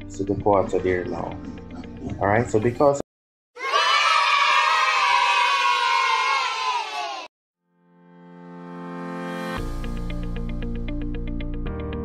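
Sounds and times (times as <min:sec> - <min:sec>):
children cheering: 0:03.6 - 0:07.3.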